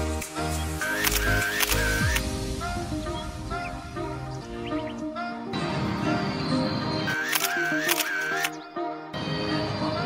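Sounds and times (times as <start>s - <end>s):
background music: 0.0s - 10.0s
camera shutter clicks: 0.2s - 2.2s, 7.1s - 8.6s.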